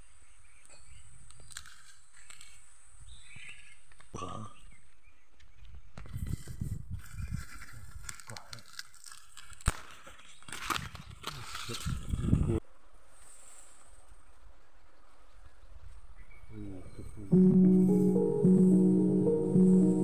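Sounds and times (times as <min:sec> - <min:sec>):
tall grass rustling: 0:12.8 - 0:16.3.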